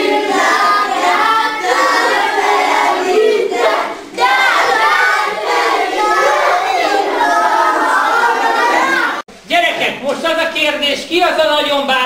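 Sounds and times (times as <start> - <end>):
children calling out and cheering: 0.3 - 9.3.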